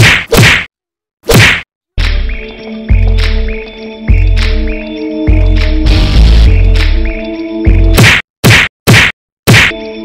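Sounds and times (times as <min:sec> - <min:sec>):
sharp fight whacks: 0:00.0 - 0:01.7, 0:08.0 - 0:09.8.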